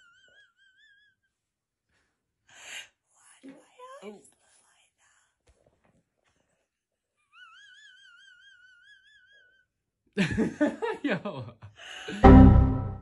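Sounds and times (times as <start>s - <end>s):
high-pitched squeal of laughter: 0.0s - 1.2s, 7.3s - 9.7s
woman's wheezy laughter: 0.0s - 1.2s.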